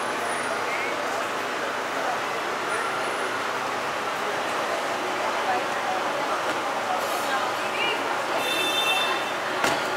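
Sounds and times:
faint voices: 0.0s - 9.9s
street traffic: 0.0s - 9.9s.

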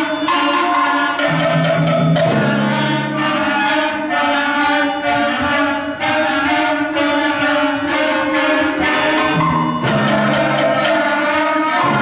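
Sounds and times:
concert band wind chords: 0.0s - 12.0s.

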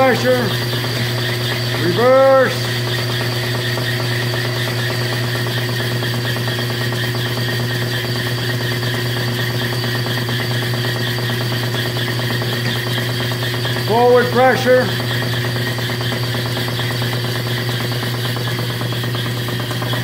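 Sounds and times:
transmission mechanical hum: 0.0s - 20.0s.

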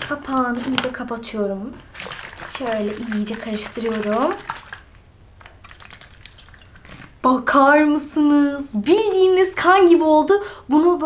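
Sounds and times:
water sloshing in plastic bottle: 0.0s - 7.3s.

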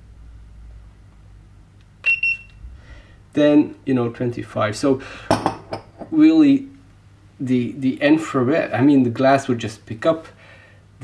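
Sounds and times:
thermometer beep: 2.0s - 2.6s.

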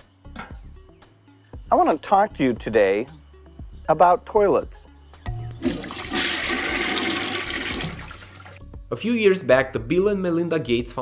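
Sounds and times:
toilet flushing: 5.6s - 8.6s.

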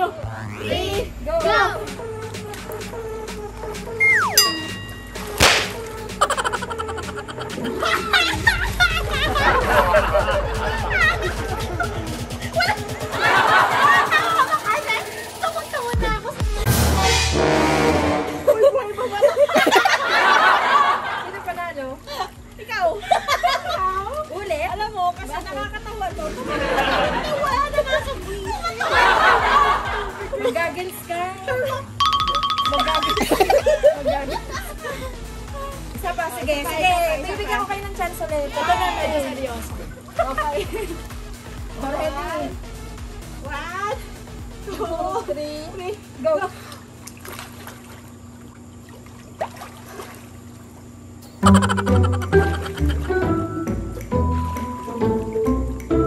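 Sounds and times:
faint background music: 0.0s - 48.0s, 51.4s - 56.0s
falling whistle: 4.0s - 4.4s
rapid repeated high tones: 4.0s - 5.6s, 32.0s - 33.9s
bending swooping tones: 4.0s - 5.9s
short chime: 4.3s - 5.4s.

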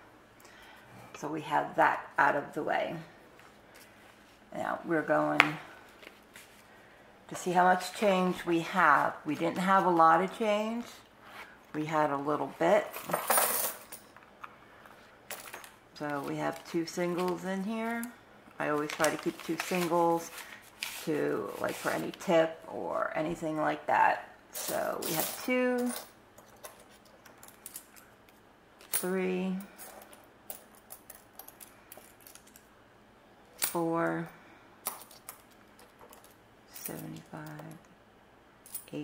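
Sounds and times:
coins jingling and clattering: 12.9s - 14.1s, 29.8s - 32.7s.

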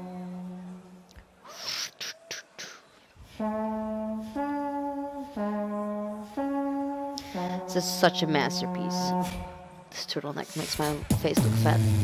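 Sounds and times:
held brass-like tones: 0.0s - 12.0s
beatbox hissing sounds: 1.5s - 3.6s.

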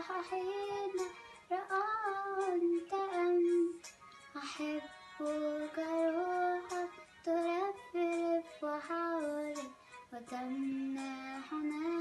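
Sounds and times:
girl singing hymn solo: 0.0s - 12.0s.

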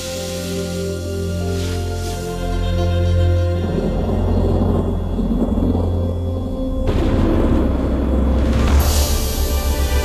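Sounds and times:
steady low drone: 0.0s - 10.0s
synthesized low rumble: 3.7s - 10.0s.

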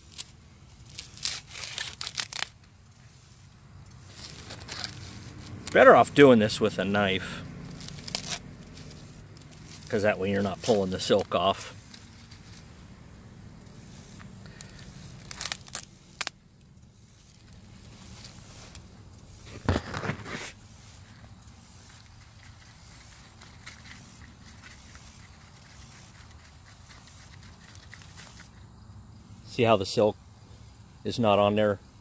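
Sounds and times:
corn husks rustling and tearing: 0.0s - 28.6s
low background rumble: 0.0s - 29.5s.

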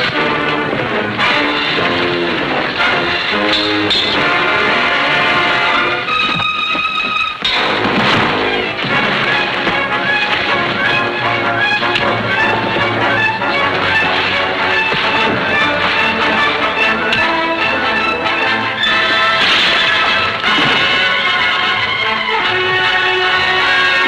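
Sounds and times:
dramatic orchestral music: 0.0s - 24.0s.

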